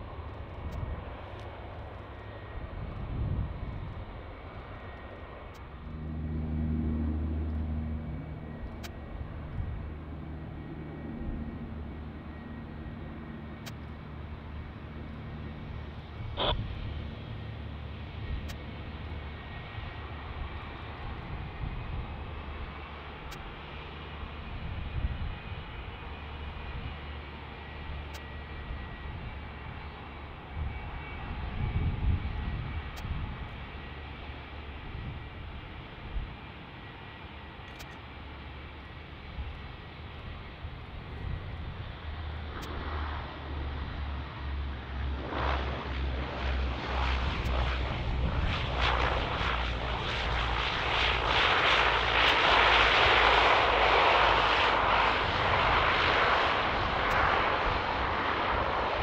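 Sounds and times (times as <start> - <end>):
jet engines rumbling: 0.0 - 59.0.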